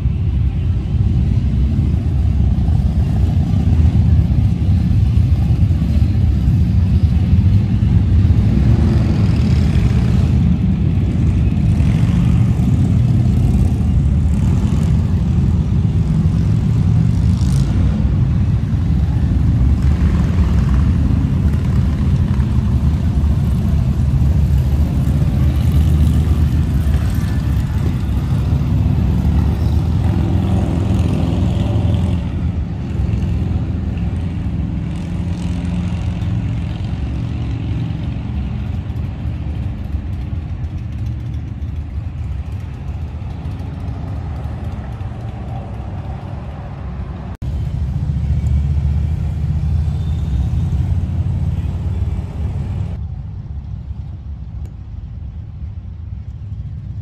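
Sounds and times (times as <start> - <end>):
motorcycles rumbling past: 0.8 - 53.0.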